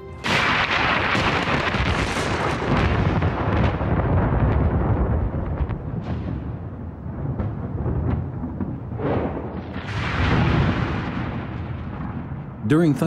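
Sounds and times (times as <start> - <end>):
thunder rumbling with crackles: 0.2 - 13.0.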